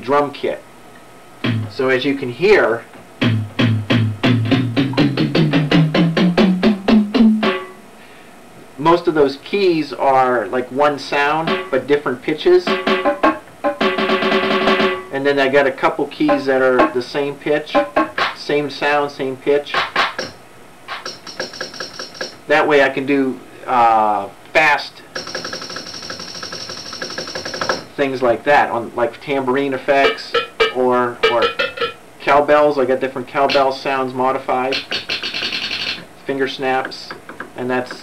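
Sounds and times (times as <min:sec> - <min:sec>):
synthesizer percussion notes rising: 0:01.4 - 0:01.8, 0:03.2 - 0:07.8, 0:11.5 - 0:11.8, 0:12.6 - 0:15.1, 0:16.2 - 0:17.0, 0:17.7 - 0:18.4, 0:19.8 - 0:22.4, 0:25.2 - 0:27.9, 0:30.0 - 0:32.0, 0:34.7 - 0:36.0.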